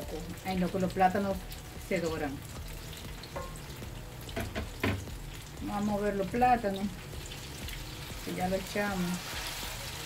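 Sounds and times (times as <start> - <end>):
plantain sizzling in hot oil: 0.0 - 10.0
wooden spoon knocking: 4.4 - 5.1.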